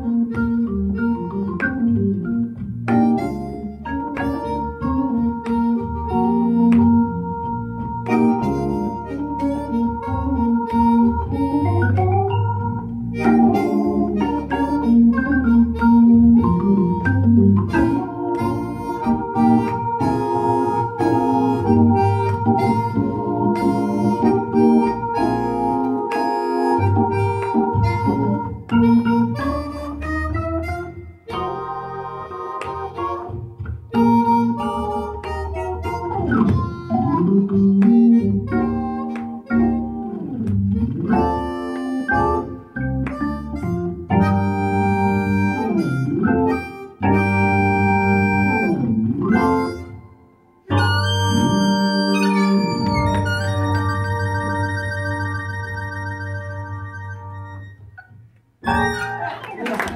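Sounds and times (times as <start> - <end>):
harmonica melody: 0.0 - 59.9
organ chords: 0.0 - 59.9.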